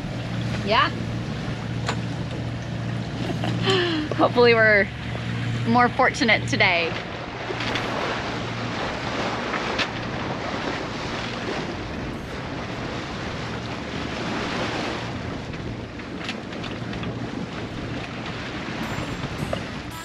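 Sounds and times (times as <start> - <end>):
sea water rushing along hull: 0.0 - 20.0
wind on microphone: 6.7 - 20.0.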